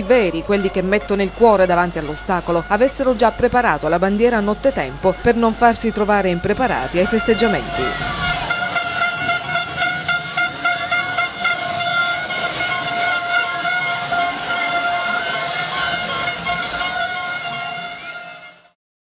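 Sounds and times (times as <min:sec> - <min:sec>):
celebrating crowd hubbub: 0:00.0 - 0:18.8
horn long steady note: 0:00.0 - 0:18.8.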